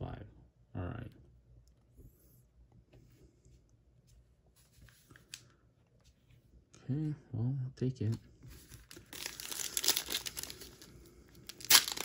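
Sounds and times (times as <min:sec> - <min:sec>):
trading cards being handled: 0:08.0 - 0:12.0.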